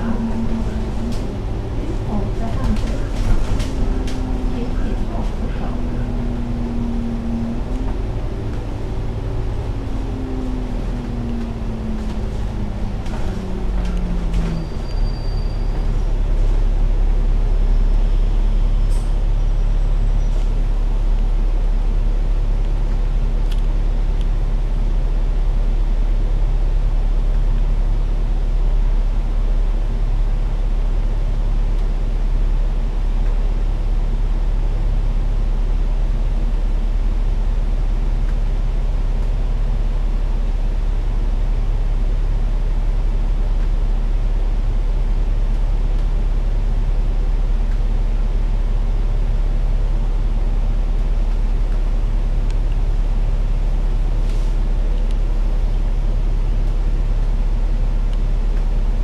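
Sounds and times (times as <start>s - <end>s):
bus engine low drone: 0.0s - 59.0s
faint high squeal: 14.4s - 16.0s.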